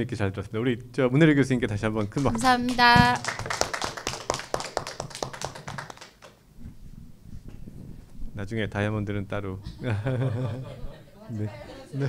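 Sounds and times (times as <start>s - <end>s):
people clapping: 2.0s - 6.4s.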